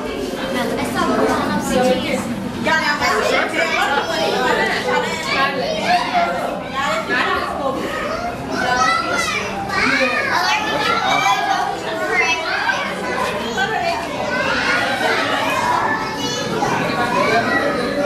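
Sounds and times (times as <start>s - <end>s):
children talking and calling out: 0.0s - 18.0s.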